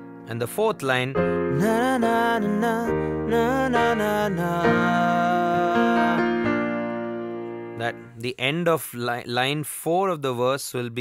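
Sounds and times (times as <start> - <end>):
digital piano chords: 0.0 - 8.2.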